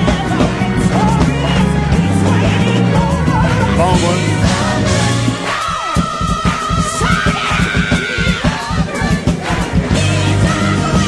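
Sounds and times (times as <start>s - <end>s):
crowd shouting and cheering: 0.0s - 11.0s
drum kit fast hits: 0.0s - 11.0s.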